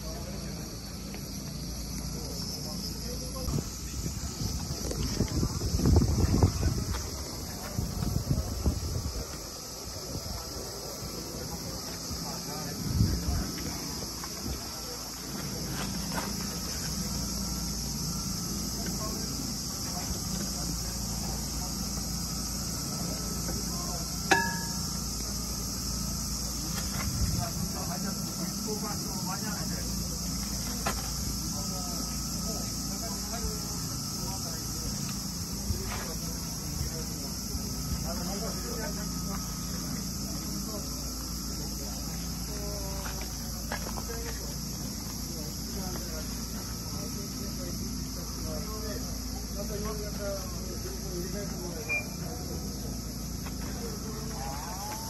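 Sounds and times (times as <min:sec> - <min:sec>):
insects buzzing: 0:00.0 - 0:55.0.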